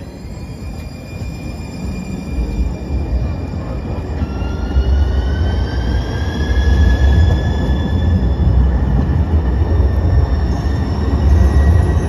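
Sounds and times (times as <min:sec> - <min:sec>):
train rumble: 0:00.0 - 0:12.0.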